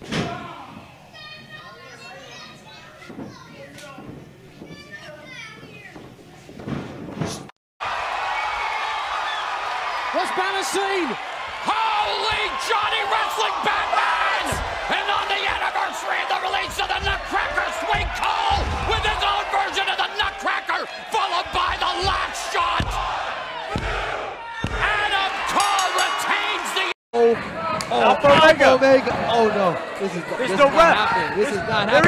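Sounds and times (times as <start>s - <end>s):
crowd cheering and shouting: 7.8s - 32.0s.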